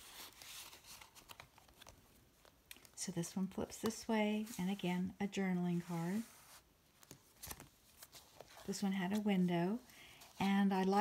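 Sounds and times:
paper rustling: 0:00.0 - 0:03.0, 0:05.8 - 0:09.4.

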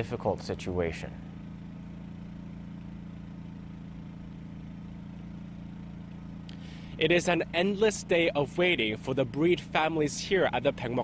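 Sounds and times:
low engine hum: 0:00.0 - 0:11.0.

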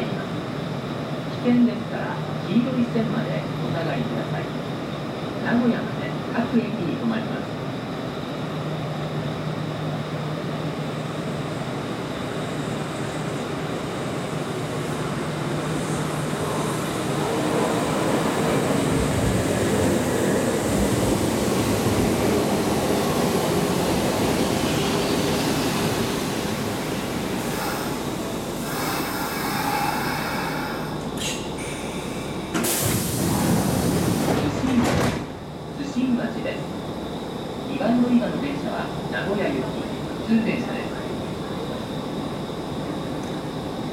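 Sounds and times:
train doors sliding open: 0:14.7 - 0:35.5
electric train braking: 0:26.8 - 0:34.4
air hissing bursts: 0:28.6 - 0:34.3.

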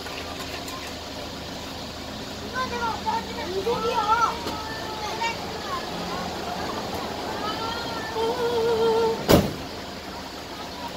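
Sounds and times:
wavering vocal call: 0:04.6 - 0:09.3
sliding van door slamming: 0:08.9 - 0:09.7.

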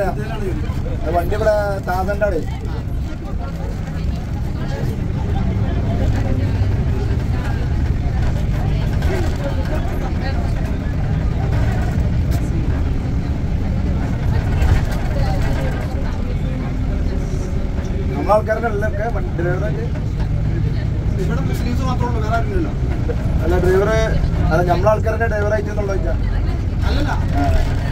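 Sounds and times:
car engine and tyres rumbling: 0:00.0 - 0:27.9
faint voices talking: 0:00.0 - 0:27.9.

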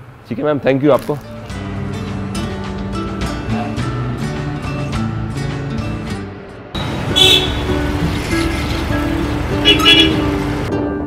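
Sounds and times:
town traffic noise: 0:00.0 - 0:11.0
background music: 0:01.0 - 0:11.0
short vehicle horn toots: 0:07.1 - 0:07.7, 0:09.6 - 0:10.3.

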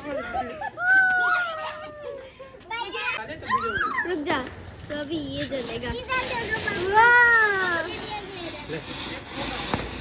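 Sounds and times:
children calling and shouting: 0:00.0 - 0:09.8.

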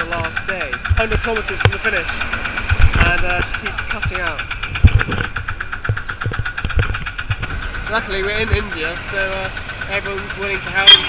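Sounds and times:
small engine idling unevenly: 0:00.0 - 0:11.0.

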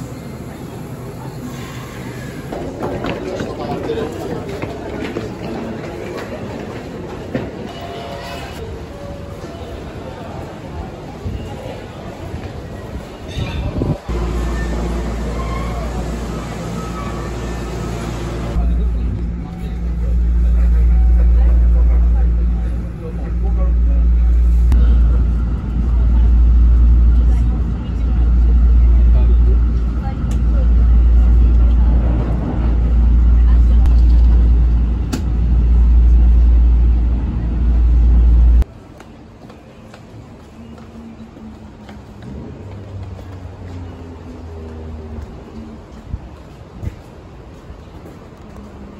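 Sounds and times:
train interior rumble: 0:00.0 - 0:48.9
voices on station platform: 0:00.0 - 0:48.9.

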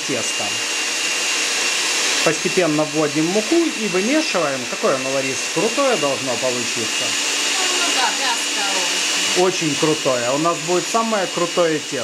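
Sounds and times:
electric stand mixer running: 0:00.0 - 0:12.0.

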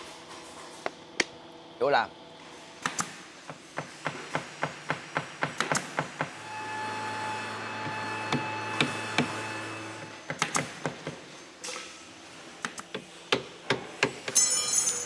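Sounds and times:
machine humming: 0:06.2 - 0:10.8.

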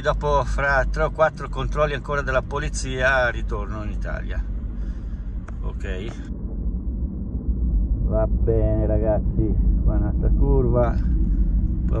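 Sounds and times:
vehicle driving on road: 0:00.0 - 0:12.0.

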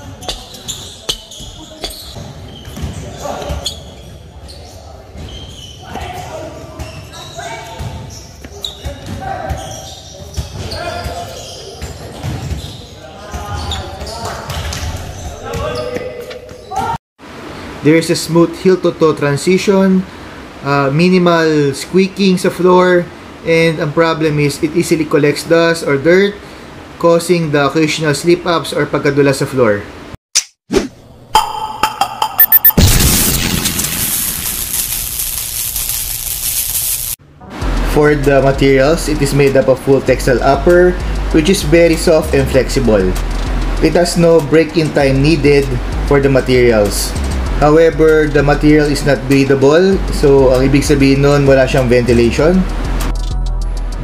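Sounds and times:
basketball bouncing on concrete: 0:00.2 - 0:03.0
loud hit: 0:31.4 - 0:35.1.

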